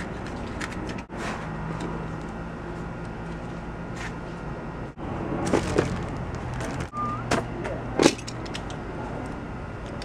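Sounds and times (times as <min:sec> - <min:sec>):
steady low hum: 0:00.0 - 0:10.0
small objects clattering: 0:05.4 - 0:06.9
brief rising tone: 0:06.9 - 0:07.3.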